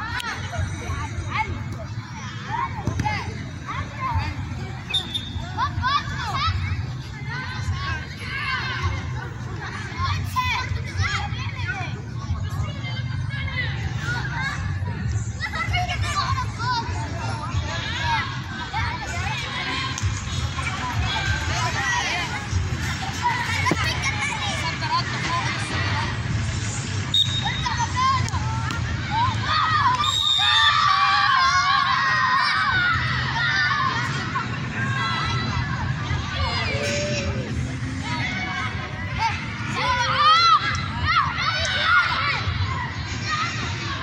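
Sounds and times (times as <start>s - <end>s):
children shouting: 27.4s - 44.0s.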